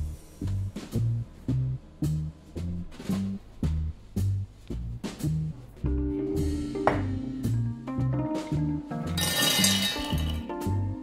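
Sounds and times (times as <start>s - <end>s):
background music with bass line: 0.0s - 11.0s
nuts clattering into metal pot: 9.2s - 10.5s.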